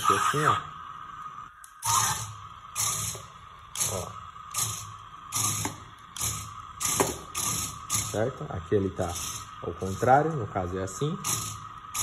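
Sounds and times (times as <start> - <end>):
toy car motors whirring: 0.0 - 0.6, 1.8 - 8.2, 9.0 - 10.3, 11.1 - 12.0.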